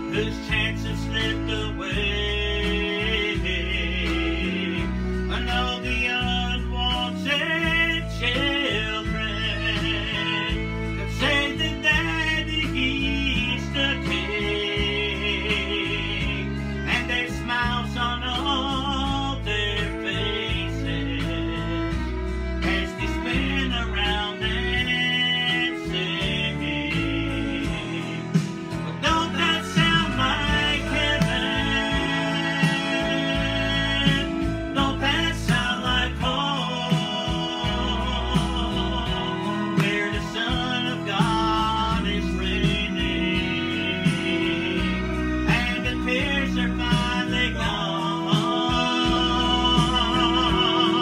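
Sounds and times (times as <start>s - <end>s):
guitar accompaniment: 0.0s - 51.0s
man singing gospel song: 0.0s - 51.0s.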